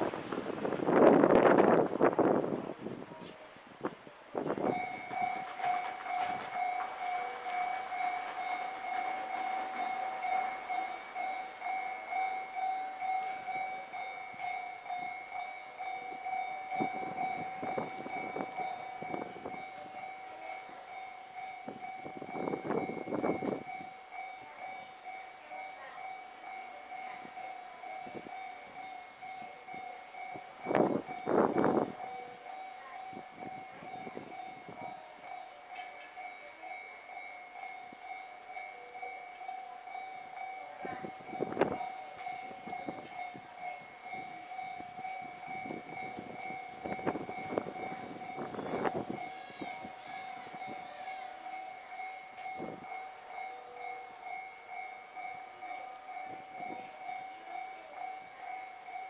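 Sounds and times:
two-tone ringing warning signal: 0:04.6 - 0:59.0.

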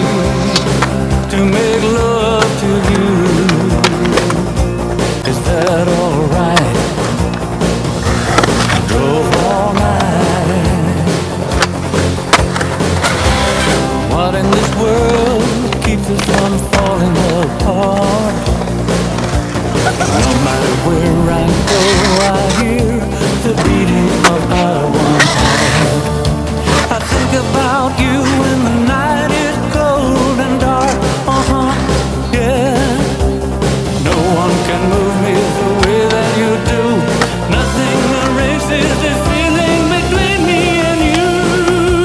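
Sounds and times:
rock song with singing: 0:00.0 - 0:42.0
skateboard wheels rolling on concrete: 0:00.0 - 0:42.0
skateboard clacks and knocks: 0:11.5 - 0:13.8.

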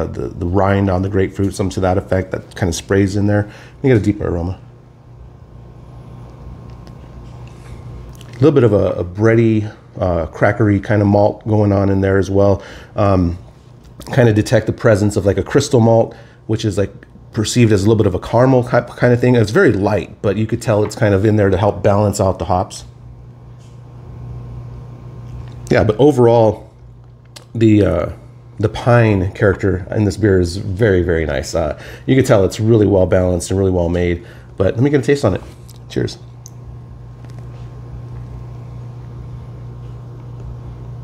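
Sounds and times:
low steady hum: 0:00.0 - 0:41.0.

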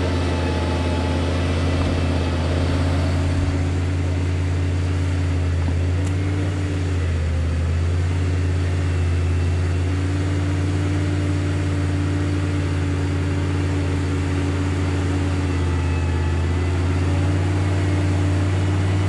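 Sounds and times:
car engine running steadily: 0:00.0 - 0:19.0.

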